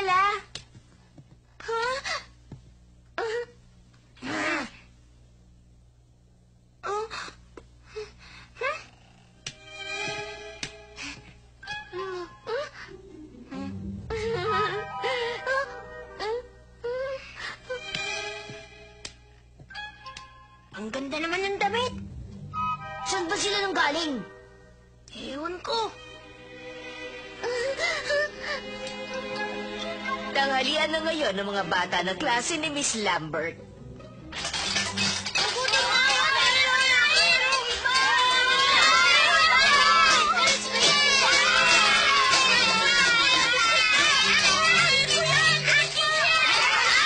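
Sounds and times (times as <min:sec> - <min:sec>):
soft background music: 0:09.3 - 0:46.0
children shouting: 0:35.6 - 0:47.0.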